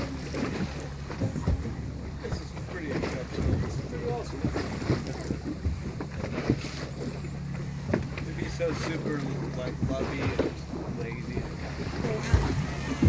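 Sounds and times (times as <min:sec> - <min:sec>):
boat engine humming: 0:00.0 - 0:13.0
water splashing against hull: 0:00.0 - 0:13.0
wind buffeting microphone: 0:00.0 - 0:13.0.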